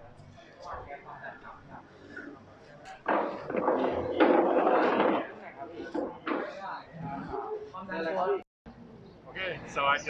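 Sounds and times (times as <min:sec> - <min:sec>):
people talking: 0:00.0 - 0:08.4.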